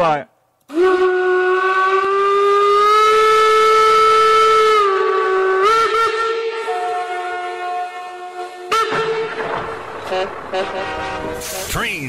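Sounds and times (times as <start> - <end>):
train whistle blowing: 0.7 - 9.5, 10.1 - 11.7.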